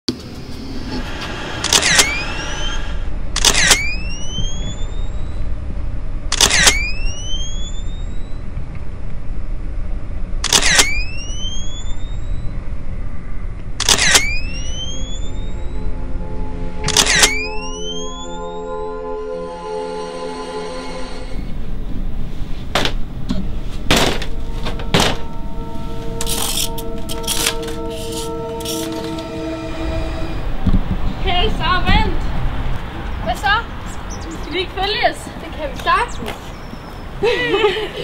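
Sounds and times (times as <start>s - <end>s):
short rising whine: 0.1s - 8.6s, 10.4s - 22.2s, 24.3s - 31.6s
low rumble: 0.1s - 37.3s
camera shutter clicks: 6.3s - 6.9s, 10.4s - 10.9s, 13.8s - 14.3s, 16.9s - 17.4s.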